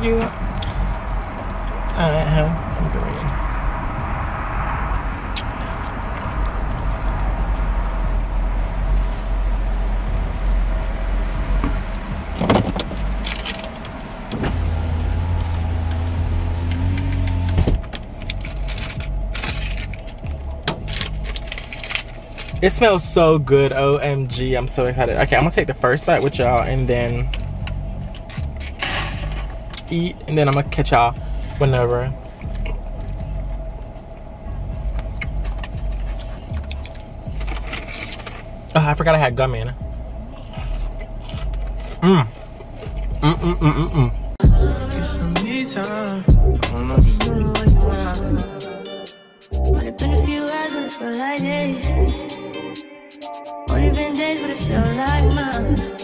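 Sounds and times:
car engine rumble from inside: 0:00.0 - 0:48.5, 0:53.7 - 0:56.0
rustles and clicks: 0:16.6 - 0:22.6, 0:35.0 - 0:38.6.

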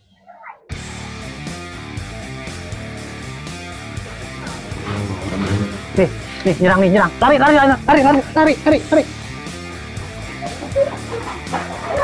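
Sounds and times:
guitar background music: 0:01.1 - 0:12.0.

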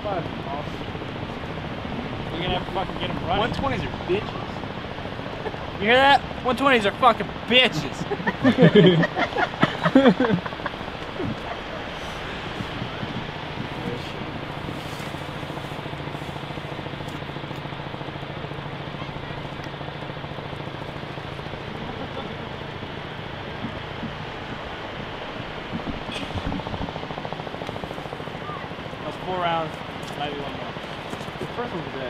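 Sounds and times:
outdoor noise with low hum: 0:00.0 - 0:32.0.

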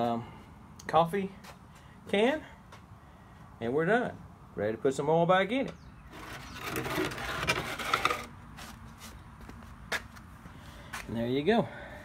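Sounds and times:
hose scraping and rubbing: 0:06.1 - 0:09.2.

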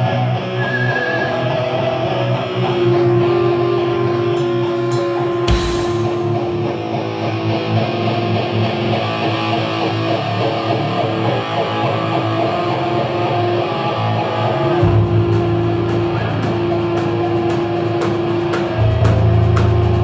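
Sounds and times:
electric guitar riff: 0:00.0 - 0:20.0
bass and drums: 0:04.4 - 0:07.5, 0:14.6 - 0:20.0
cymbal hits: 0:04.4 - 0:07.5.

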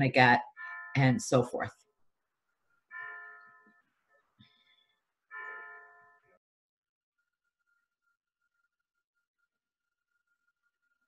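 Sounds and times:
faint stringed instrument chords: 0:00.0 - 0:01.7.

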